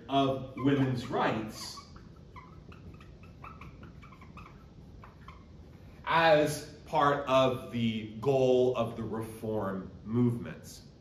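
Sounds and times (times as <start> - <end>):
marker squeaking on whiteboard: 0.0 - 6.2.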